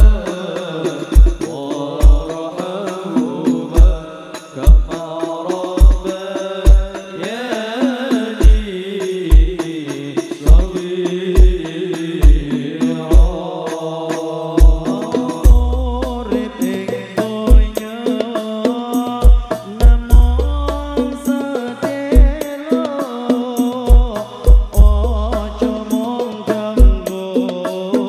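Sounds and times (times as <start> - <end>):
percussion: 0.0 - 28.0
voices singing in chanting style: 0.0 - 28.0
deep bass drum thumping: 15.4 - 16.3, 19.2 - 21.1, 23.9 - 25.6.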